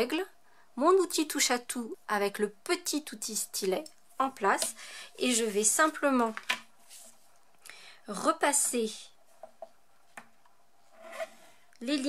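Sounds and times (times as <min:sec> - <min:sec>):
woman's voice: 0:00.0 - 0:06.4, 0:08.0 - 0:09.2, 0:11.8 - 0:12.0
stylus scraping along metal ruler: 0:10.9 - 0:11.4.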